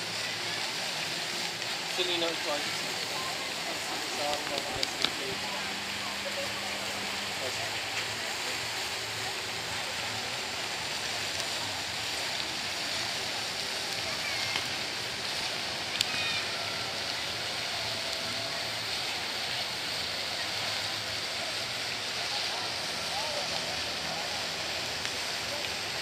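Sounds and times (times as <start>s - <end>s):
faint voices: 0.0s - 26.0s
fountain water splashing: 0.0s - 26.0s.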